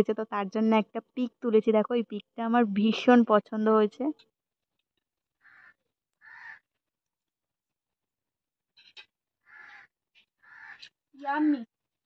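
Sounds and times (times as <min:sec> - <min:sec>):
harsh bird call: 0:05.4 - 0:06.6.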